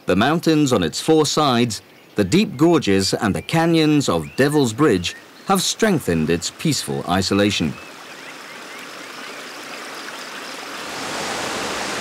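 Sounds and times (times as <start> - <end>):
river rushing over rocks: 9.7 - 12.0.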